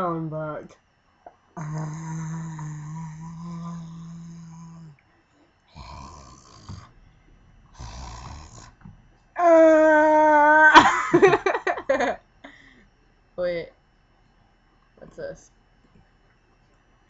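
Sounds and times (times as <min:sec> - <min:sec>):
person making wordless vocal noises: 0:01.6 - 0:05.0.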